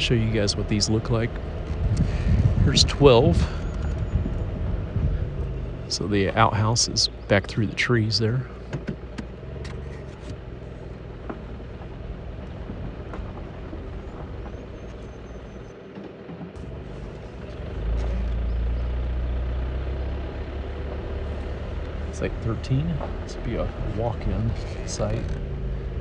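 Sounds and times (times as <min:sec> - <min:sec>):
tyres on dirt road: 0:00.0 - 0:26.0
vehicle engine rumbling: 0:00.0 - 0:26.0.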